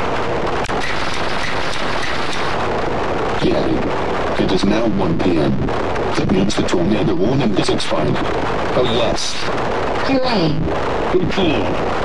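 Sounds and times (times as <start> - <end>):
harsh distorted noise: 0.0 - 12.0.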